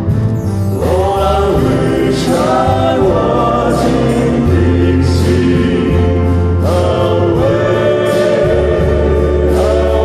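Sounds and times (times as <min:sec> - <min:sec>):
male vocal quartet singing: 0:00.7 - 0:10.0.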